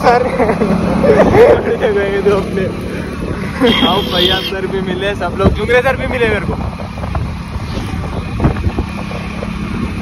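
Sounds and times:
motorcycle engine hum: 0.0s - 10.0s
road noise: 0.0s - 10.0s
wind buffeting microphone: 5.2s - 10.0s.

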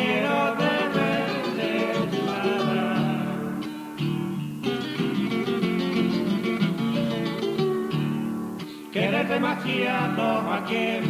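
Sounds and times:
acoustic guitars playing: 0.0s - 11.0s.

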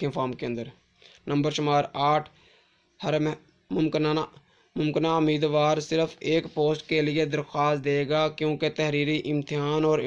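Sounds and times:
man narrating: 0.0s - 2.4s, 3.0s - 10.0s.

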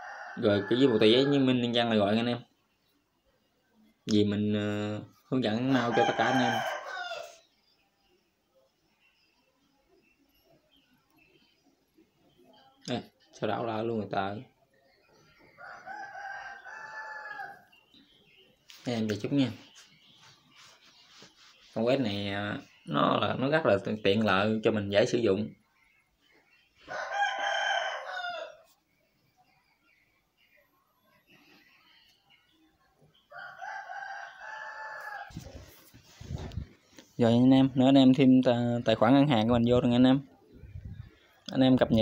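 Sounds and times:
rooster crowing: 0.0s - 1.6s, 5.6s - 7.4s, 15.5s - 17.8s, 26.8s - 28.7s, 33.3s - 35.4s.

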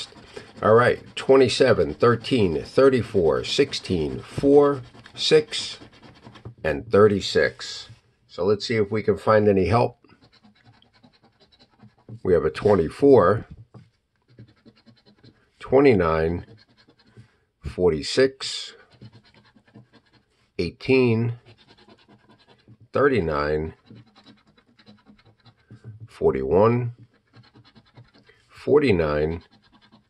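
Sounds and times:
coin scratching lottery ticket: 0.0s - 6.6s, 9.7s - 13.4s, 14.2s - 17.2s, 18.5s - 20.3s, 20.9s - 25.9s, 26.9s - 28.3s, 29.0s - 30.0s.

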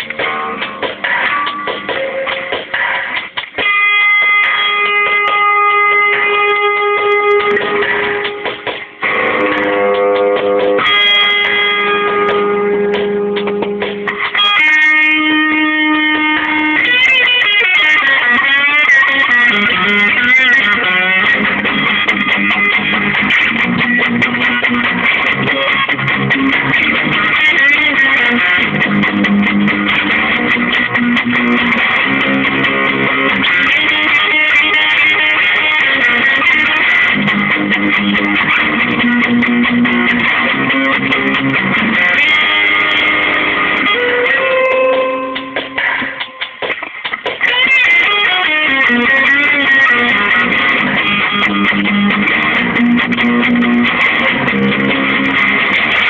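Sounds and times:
drum machine beat: 0.0s - 15.4s, 16.2s - 56.0s
distorted electric guitar riff: 0.0s - 56.0s.

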